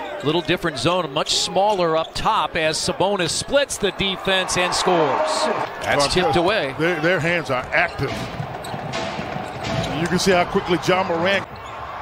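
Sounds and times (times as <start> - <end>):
basketball bouncing on hardwood: 7.6 - 10.3.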